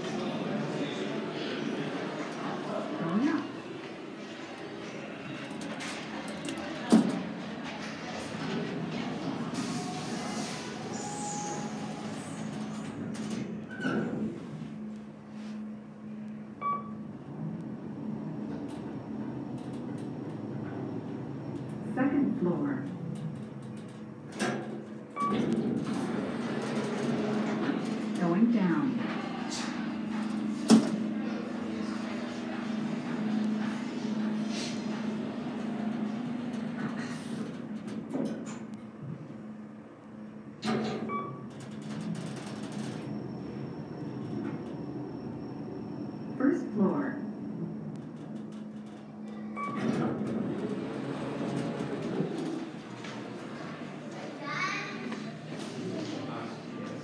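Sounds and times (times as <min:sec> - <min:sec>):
elevator hum: 0:00.0 - 0:57.0.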